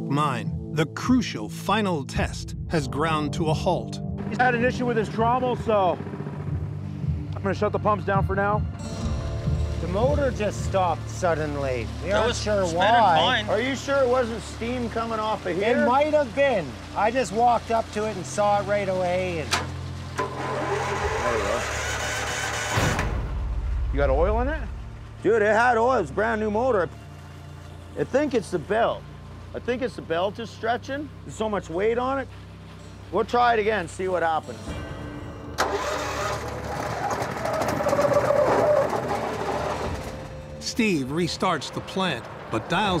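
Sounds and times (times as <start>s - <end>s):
trommel turning with rocks and water: 9.4s - 22.7s
heavy machinery engine idling: 9.9s - 25.2s
belt-driven motor running: 19.2s - 22.9s.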